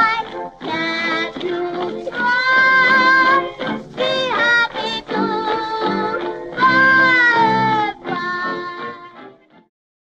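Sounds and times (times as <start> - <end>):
musical accompaniment: 0.0 - 9.7.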